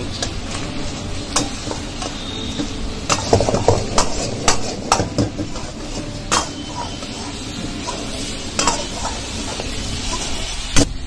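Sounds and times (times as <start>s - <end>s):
food sizzling: 0.0s - 11.0s
metal spatula scraping pan: 0.2s - 10.7s.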